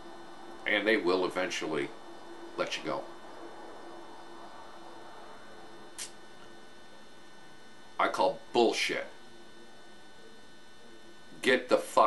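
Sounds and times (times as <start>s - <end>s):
faint room noise: 0.0s - 12.0s
steady electrical hum: 0.0s - 12.0s.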